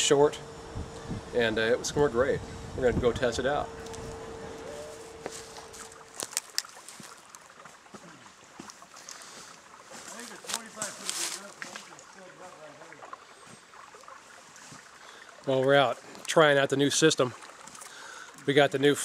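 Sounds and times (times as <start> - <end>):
steady hum: 0.0 - 7.3
creek water running: 0.0 - 19.0.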